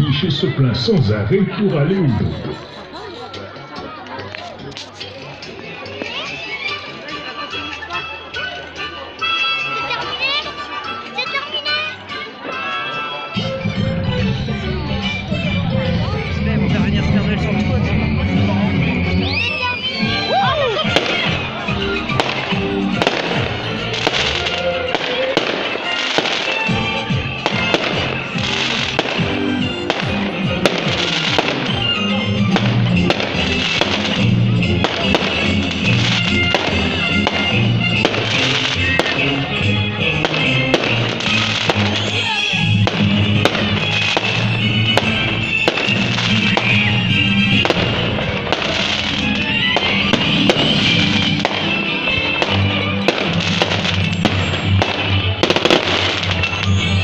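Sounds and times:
fireworks bangs and crackles: 2.2s - 8.0s, 13.4s - 57.0s.

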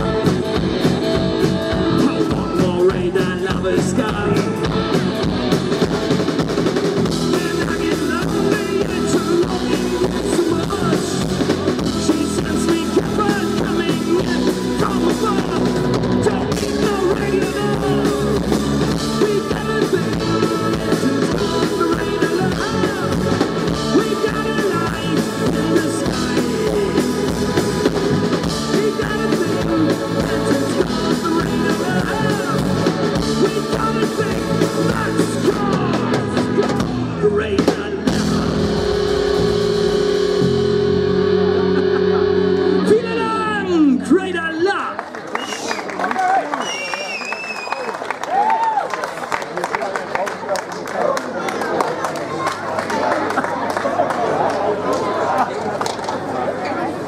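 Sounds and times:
live rock band playing: 0.0s - 45.9s
held guitar chord ringing: 38.1s - 44.1s.

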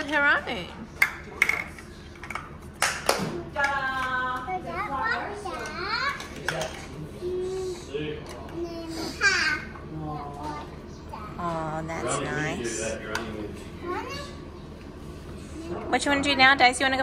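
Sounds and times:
toddler babbling: 8.6s - 9.8s.

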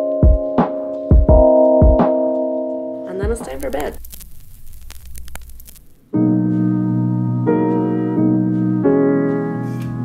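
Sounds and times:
light clicks and crackles: 3.4s - 6.0s.

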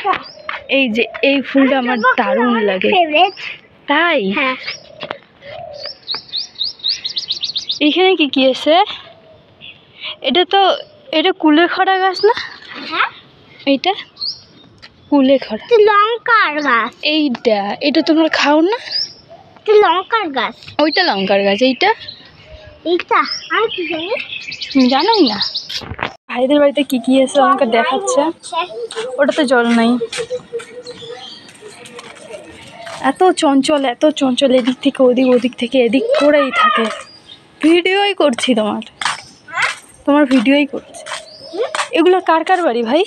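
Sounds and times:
person's voice: 0.0s - 4.7s, 26.3s - 30.3s, 31.7s - 37.0s, 40.1s - 43.0s
small bird chirping: 0.0s - 17.3s, 18.1s - 26.0s, 26.8s - 43.0s.

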